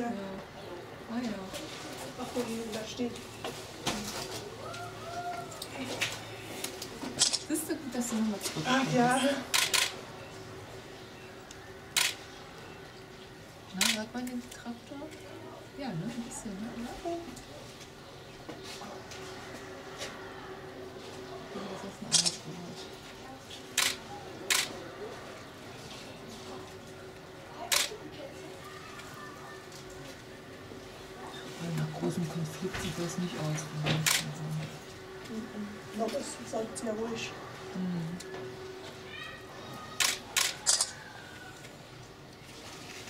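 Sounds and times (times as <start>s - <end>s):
faint background hum: 0.0s - 43.0s
camera shutter clicking: 22.1s - 22.4s, 40.0s - 40.9s.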